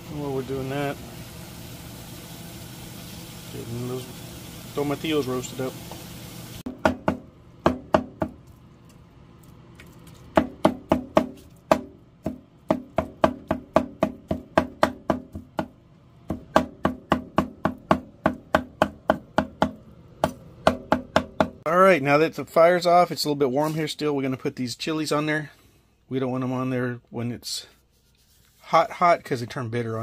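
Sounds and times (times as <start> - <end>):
knife chopping on wooden board: 10.4 - 15.7, 16.3 - 21.6.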